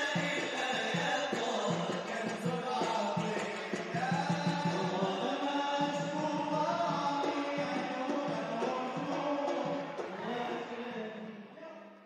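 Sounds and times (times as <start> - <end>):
chanted vocal melody: 0.0 - 12.0.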